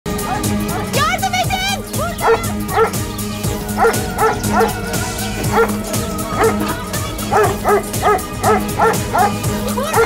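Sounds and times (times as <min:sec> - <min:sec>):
background music: 0:00.1 - 0:10.0
dog barking: 0:00.2 - 0:00.9, 0:02.2 - 0:03.0, 0:03.8 - 0:04.9, 0:05.5 - 0:05.7, 0:06.4 - 0:06.7, 0:07.3 - 0:10.0.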